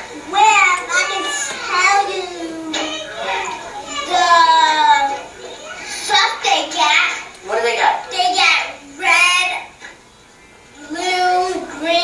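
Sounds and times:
young child talking over speakers: 0.2s - 9.8s, 10.8s - 12.0s.

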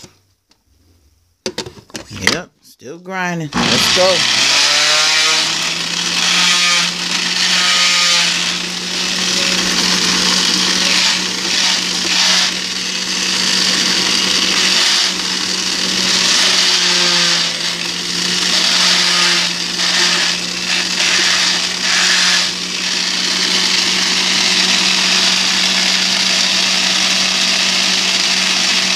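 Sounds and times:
juicer grinding fruit whirring: 3.6s - 28.9s
juicer motor hum: 3.6s - 28.9s.

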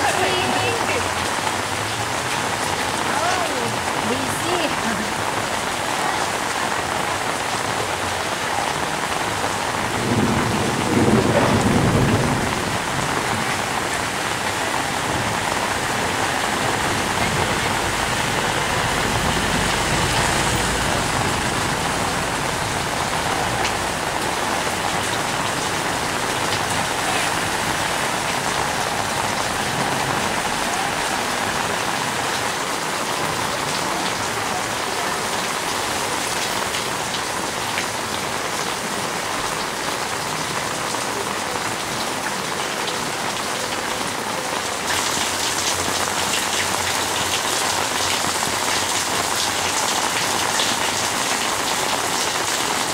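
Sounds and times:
heavy rain on standing water: 0.0s - 52.9s.

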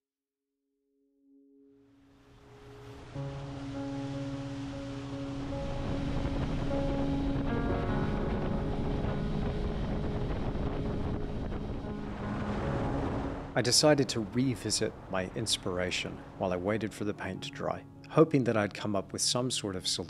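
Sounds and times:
soft sustained music chords: 1.3s - 20.0s
rushing water: 2.0s - 20.0s
wind noise: 2.7s - 16.8s.

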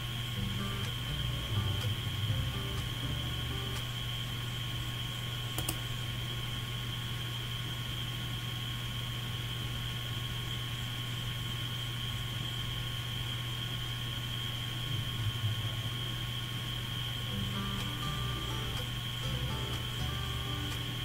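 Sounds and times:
thin high whine: 0.0s - 8.5s, 9.1s - 21.0s
electrical hum and hiss: 0.0s - 21.0s.

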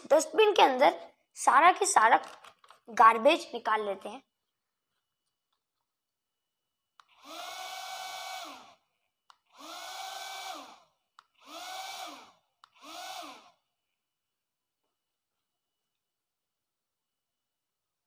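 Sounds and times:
small electric motor whining: 7.0s - 8.8s, 9.5s - 13.6s.

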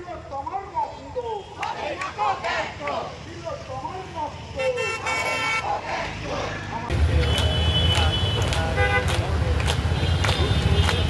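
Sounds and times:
crowd voices: 0.4s - 11.0s
vehicle horns tooting: 4.6s - 5.7s, 7.1s - 9.2s, 9.9s - 11.0s.

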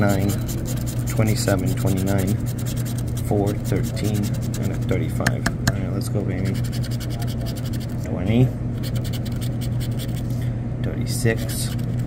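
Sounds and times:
scratch-off ticket being scraped: 0.0s - 5.1s, 6.4s - 8.0s, 8.8s - 10.3s, 11.3s - 12.0s.

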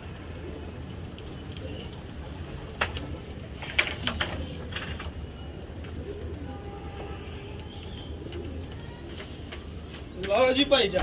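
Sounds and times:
pigeons cooing: 0.0s - 11.0s.

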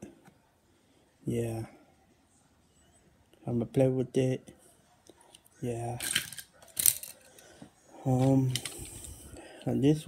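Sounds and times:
toy cars rustling: 6.0s - 7.5s, 8.1s - 9.2s.

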